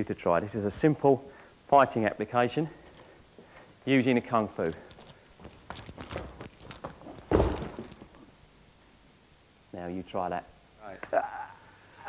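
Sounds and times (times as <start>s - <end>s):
scuffling steps on foam mat: 4.6s - 8.2s
body thudding onto mat: 6.2s - 8.2s.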